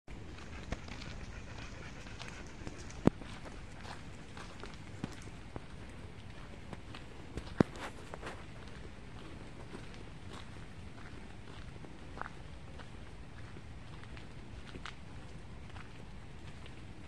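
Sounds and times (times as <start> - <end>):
footsteps on dirt path: 0.2 - 16.8.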